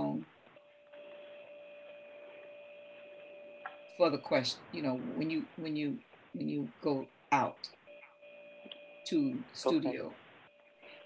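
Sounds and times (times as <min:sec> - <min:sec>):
faint electronic hum: 0:00.0 - 0:11.0
low hiss: 0:03.9 - 0:07.9.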